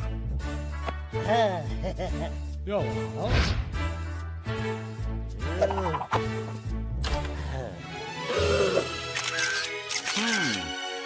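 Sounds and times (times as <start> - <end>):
background music: 0.0 - 11.0
camera shutter clicking: 9.1 - 10.7.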